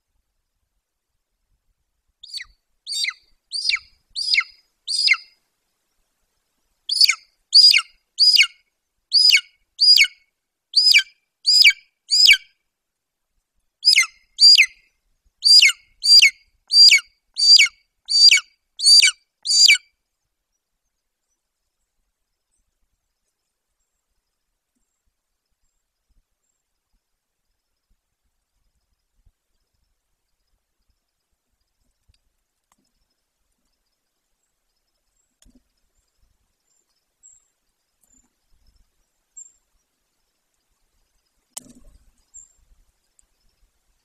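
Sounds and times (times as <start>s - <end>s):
eagle yelping calls: 2.2s - 5.3s, 6.9s - 10.2s, 10.8s - 12.4s, 13.8s - 14.8s, 15.4s - 19.8s.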